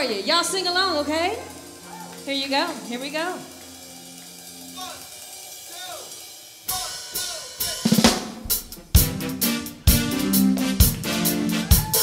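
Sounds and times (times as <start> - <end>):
band playing: 0.0 - 12.0
drum kit playing: 0.0 - 12.0
snare and cymbal hits: 1.5 - 12.0.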